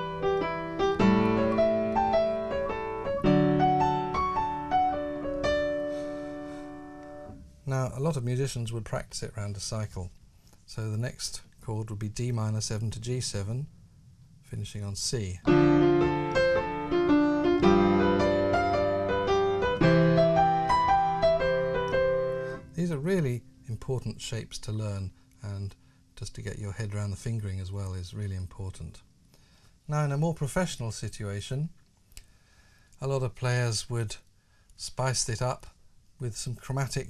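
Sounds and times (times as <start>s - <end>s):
piano arpeggios over chords: 0.0s - 7.3s, 15.5s - 22.7s.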